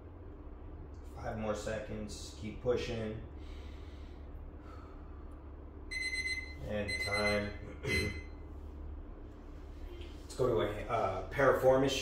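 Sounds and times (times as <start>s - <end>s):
low room hum: 0.0s - 12.0s
phone timer alarm tone: 5.9s - 8.3s.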